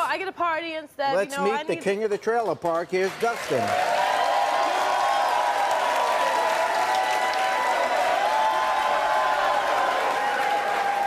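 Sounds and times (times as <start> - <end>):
audience applauding: 2.4 - 11.0
crowd shouting: 3.9 - 11.0.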